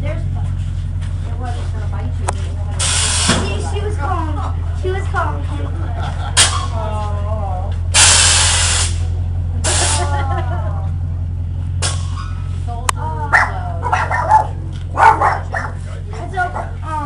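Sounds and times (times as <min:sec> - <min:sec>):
pickup truck engine rumbling: 0:00.0 - 0:17.0
loud hiss: 0:08.0 - 0:10.0.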